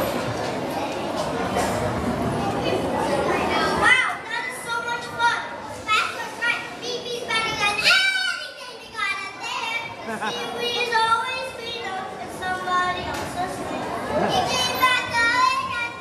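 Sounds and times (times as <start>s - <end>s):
children talking and calling out: 0.0s - 16.0s
dense crowd noise: 0.0s - 16.0s.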